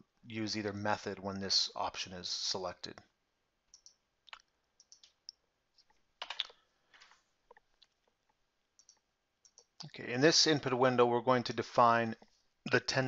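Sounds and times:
computer mouse clicks: 0:03.7 - 0:07.6, 0:08.8 - 0:09.7.

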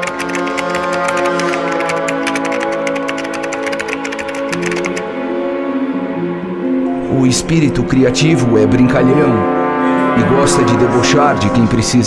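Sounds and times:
fast typing on a keyboard: 0:00.0 - 0:05.1
background music: 0:00.0 - 0:12.0.

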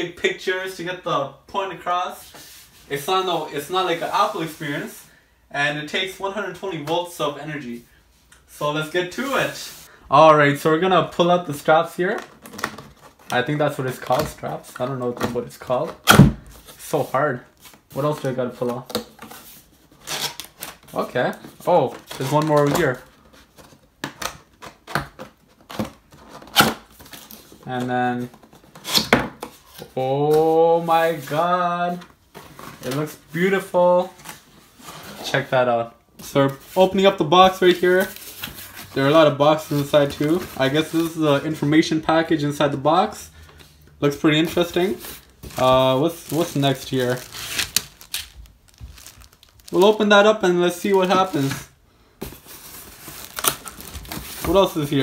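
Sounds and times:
cardboard packaging rustling: 0:12.0 - 0:55.0
plastic wrap crackle: 0:44.5 - 0:51.7, 0:52.4 - 0:55.0.

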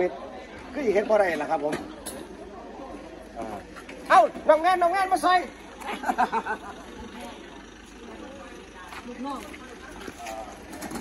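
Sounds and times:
faint indistinct voices: 0:00.0 - 0:11.0
low steady background noise: 0:00.0 - 0:11.0.

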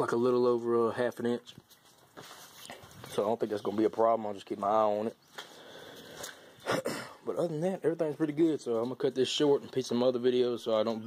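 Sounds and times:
faint background noise: 0:00.0 - 0:11.0
man clearing his throat: 0:06.6 - 0:07.2.

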